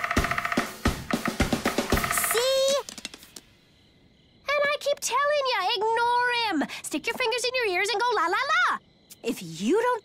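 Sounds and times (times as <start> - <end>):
drum kit beat: 0.0 - 2.7.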